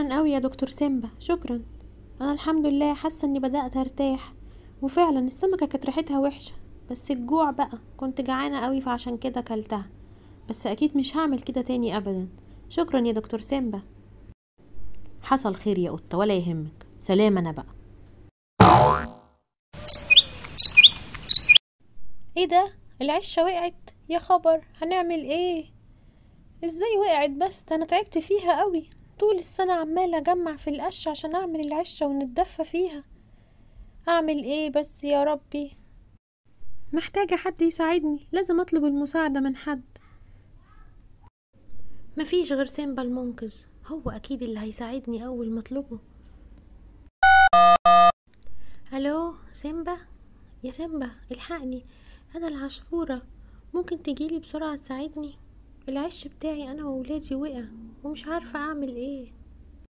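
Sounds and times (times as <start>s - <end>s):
cartoon pitched tone: 18.6s - 21.6s, 47.2s - 48.1s
short high chirps: 19.8s - 21.6s.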